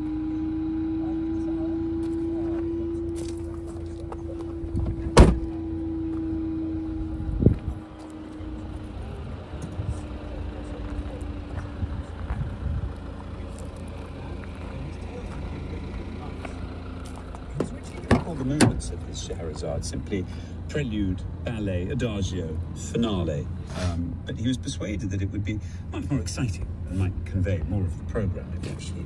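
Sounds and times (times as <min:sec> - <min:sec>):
low rumble: 0:02.7 - 0:25.3
car tailgate slamming shut: 0:04.8 - 0:05.6
soft thump: 0:04.8 - 0:05.6.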